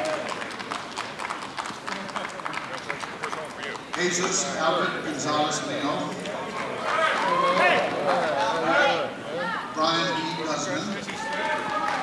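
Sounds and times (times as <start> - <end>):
hand clapping: 0.0 - 4.4.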